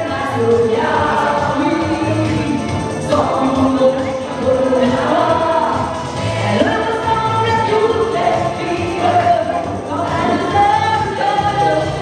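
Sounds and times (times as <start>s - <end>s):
amplified backing music: 0.0s - 12.0s
women singing together: 0.0s - 12.0s.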